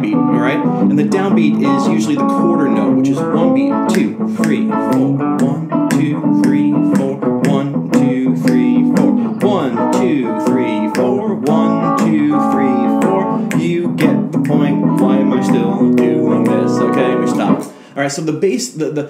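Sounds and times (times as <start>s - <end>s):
blues guitar chords and notes: 0.0s - 17.9s.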